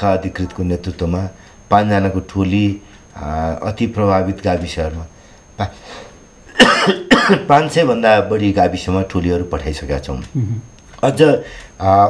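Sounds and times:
person talking: 0.0s - 5.8s, 7.3s - 12.0s
man coughing: 6.5s - 7.5s.

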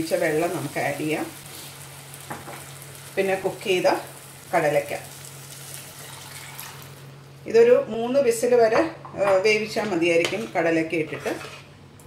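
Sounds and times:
curry sizzling in a saucepan: 0.0s - 7.2s
low steady hum: 0.0s - 12.0s
liquid pouring: 5.8s - 7.0s.

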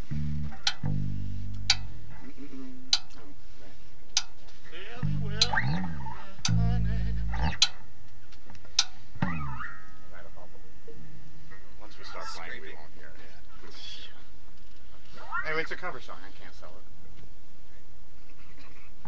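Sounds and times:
electric bass low notes: 0.0s - 11.7s
sharp clicks: 0.5s - 0.9s, 1.5s - 1.9s, 7.4s - 9.0s
gliding warbling high sounds: 5.1s - 7.6s, 9.2s - 10.0s, 15.1s - 15.8s.

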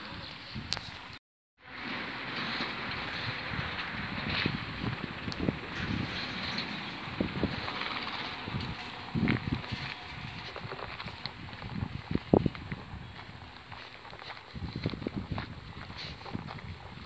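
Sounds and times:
wind rushing on microphone: 2.5s - 17.0s
low wind thumps: 2.8s - 17.0s.

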